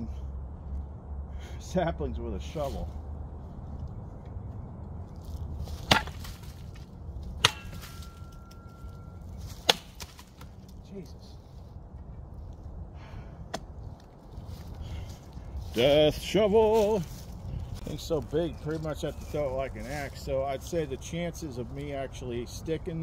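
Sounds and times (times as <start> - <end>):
shovel blade chopping wood: 5.7 - 8.7, 9.5 - 10.5.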